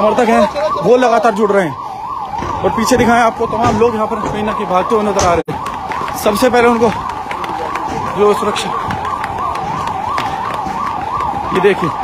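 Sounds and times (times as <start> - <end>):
ambulance siren yelping: 0.0 - 12.0.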